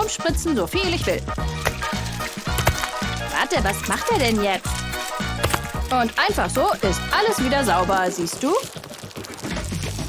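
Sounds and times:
background music: 0.0 - 8.7
food sizzling in a frying pan: 0.7 - 7.9.

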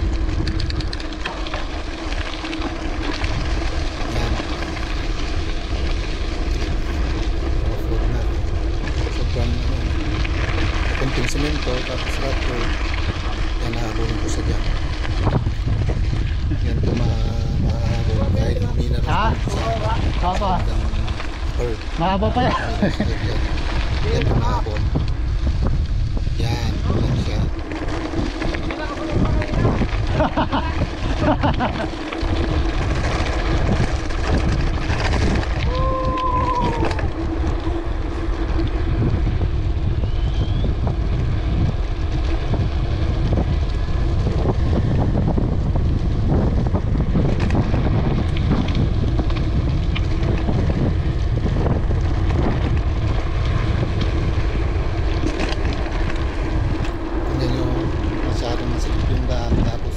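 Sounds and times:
tyres rumbling over gravel: 0.0 - 59.9
wind buffeting microphone: 0.0 - 59.9.

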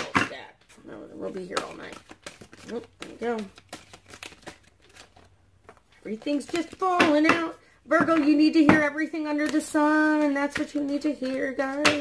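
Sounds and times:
cards slapping onto table: 1.4 - 5.8.

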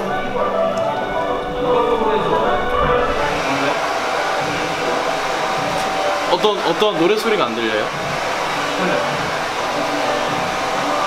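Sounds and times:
electric blower whirring: 2.5 - 11.0.

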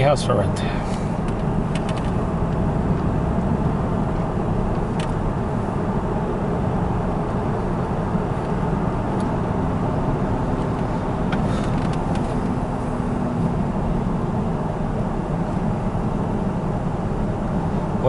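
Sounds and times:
car cabin road rumble: 0.0 - 18.0.

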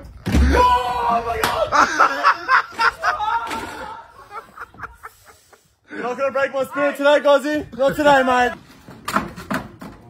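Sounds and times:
man laughing: 1.7 - 6.2.

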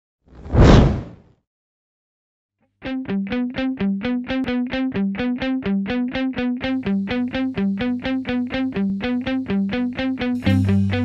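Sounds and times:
whoosh: 0.4 - 1.2.

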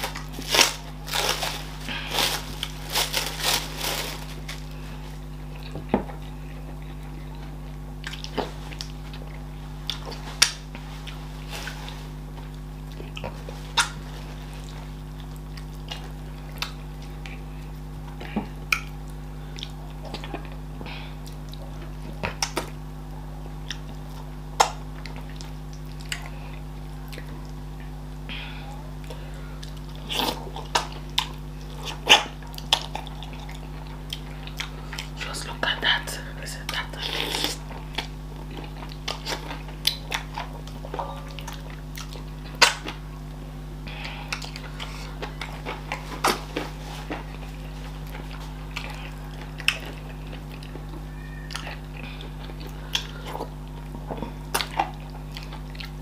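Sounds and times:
steady low hum: 0.0 - 56.0
chewing clicks: 48.0 - 56.0.

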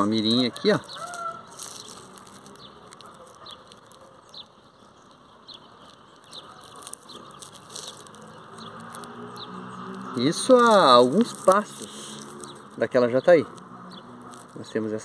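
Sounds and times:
bird chirps: 0.0 - 14.9
faint outdoor ambience: 0.0 - 15.0.

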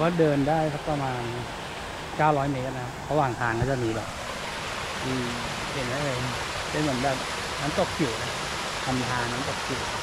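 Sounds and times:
stream rushing over rocks: 0.0 - 10.0.

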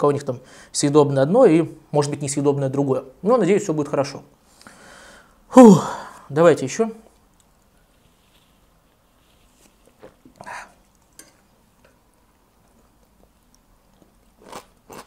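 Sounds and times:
short breath out: 4.5 - 6.3.

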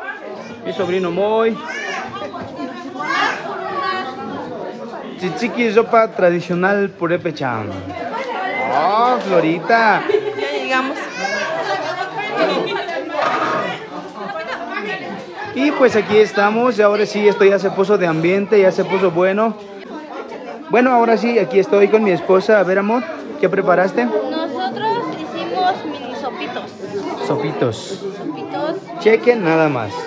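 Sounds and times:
people chattering: 0.0 - 30.0
people talking at once: 0.0 - 30.0.

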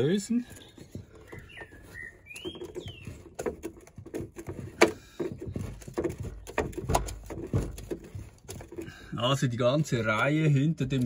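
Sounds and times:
bird chirping: 0.0 - 4.1.

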